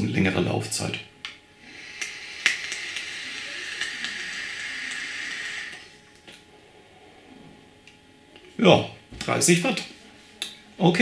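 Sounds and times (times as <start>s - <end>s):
e-cigarette coil hissing: 1.6s - 6.5s.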